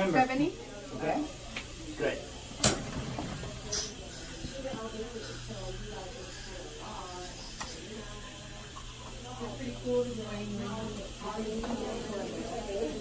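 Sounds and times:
murmured voices: 0.6s - 13.0s.

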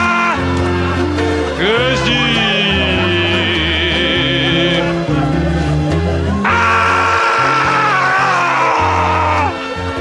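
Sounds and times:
backing track with bass: 0.0s - 10.0s
man singing a high note: 1.6s - 5.1s.

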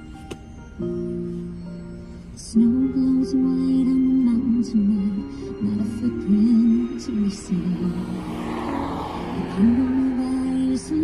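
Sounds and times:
song playing: 5.0s - 11.0s
car passing close by: 7.4s - 11.0s.

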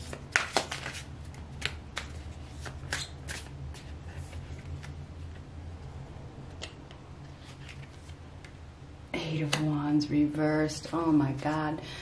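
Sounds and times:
cards shuffled by hand: 0.0s - 5.0s
low steady hum: 0.0s - 12.0s.

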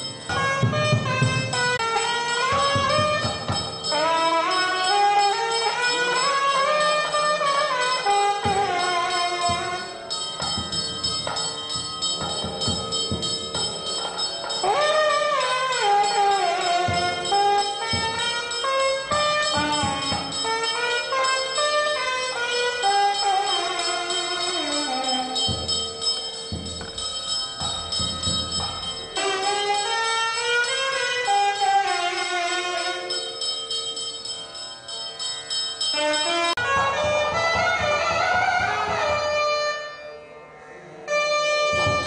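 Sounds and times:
drum strokes: 0.0s - 33.2s, 41.6s - 42.0s
wind instrument sliding melody: 0.0s - 34.7s, 35.8s - 40.2s
bell-like ringing: 0.0s - 37.1s.

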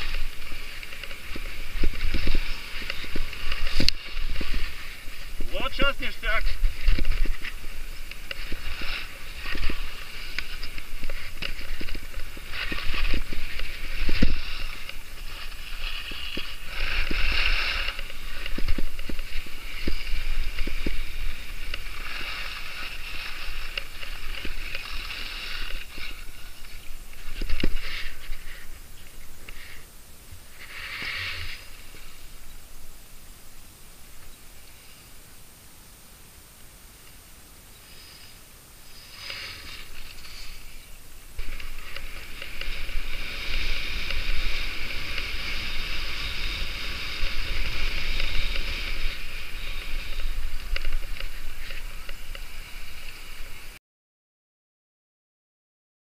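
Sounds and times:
skis scraping on snow: 0.0s - 35.5s, 37.0s - 53.8s
wind rumbling on microphone: 0.0s - 53.8s.

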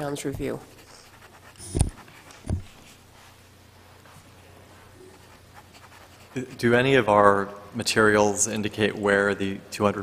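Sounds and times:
pen scratching on paper: 0.7s - 2.6s, 5.1s - 6.9s.

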